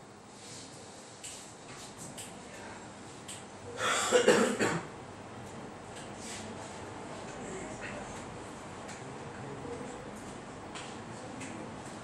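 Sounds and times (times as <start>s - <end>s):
person coughing: 3.8s - 4.9s.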